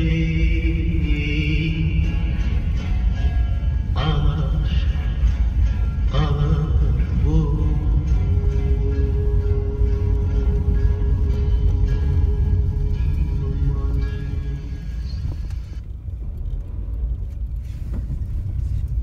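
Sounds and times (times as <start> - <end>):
car driving rumble: 0.0 - 19.0.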